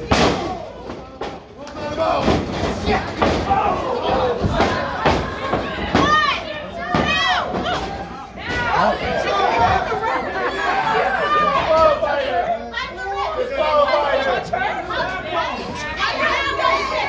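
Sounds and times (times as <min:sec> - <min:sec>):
crowd talking and shouting: 0:00.0 - 0:17.0.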